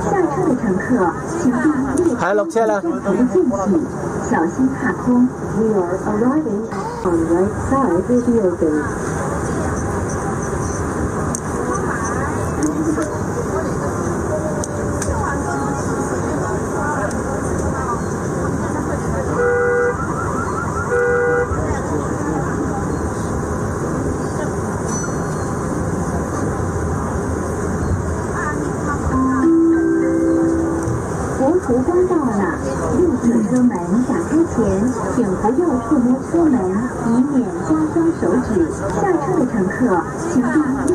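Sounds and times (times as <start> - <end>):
metro train running: 0.0 - 40.9
passengers chattering: 0.0 - 40.9
horn toots: 19.4 - 21.8.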